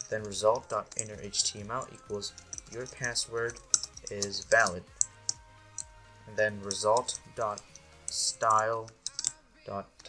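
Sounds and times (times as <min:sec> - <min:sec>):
person speaking: 0:00.0 - 0:04.9, 0:06.2 - 0:10.0.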